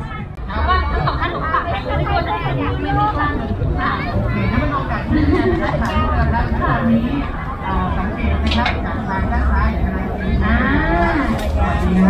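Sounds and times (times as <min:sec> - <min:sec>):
voices at food stall: 0:00.0 - 0:12.0.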